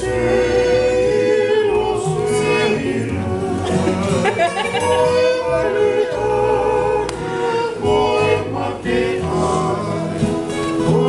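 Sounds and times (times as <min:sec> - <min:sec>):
men singing in harmony: 0:00.0 - 0:11.0
strummed acoustic guitars: 0:00.0 - 0:11.0.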